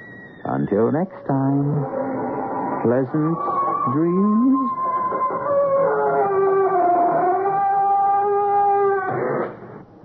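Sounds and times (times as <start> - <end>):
door creaking: 0.0 - 4.5, 5.1 - 9.6.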